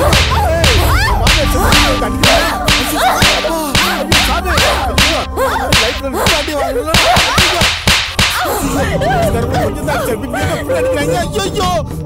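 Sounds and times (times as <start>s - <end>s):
whip-like swishing smacks: 0.0s - 8.5s
music with warbling tones: 0.0s - 10.2s.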